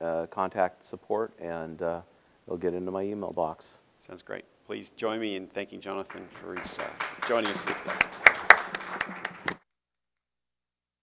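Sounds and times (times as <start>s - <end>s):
hand claps: 6.0s - 9.6s.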